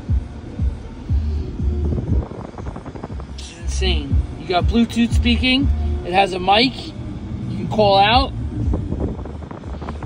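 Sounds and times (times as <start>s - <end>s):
music with heavy bass beat: 0.0s - 10.0s.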